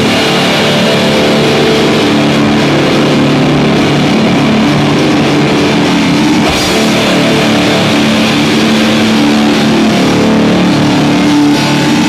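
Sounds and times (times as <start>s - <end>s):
death metal band playing: 0.0s - 12.0s.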